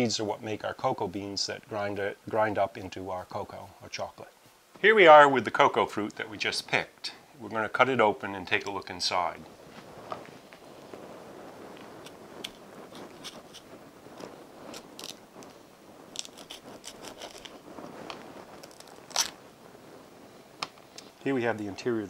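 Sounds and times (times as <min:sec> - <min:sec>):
crunches and scrapes: 0:09.4 - 0:19.4
loud crack: 0:11.7 - 0:19.5
knife cutting through rind: 0:16.2 - 0:17.5.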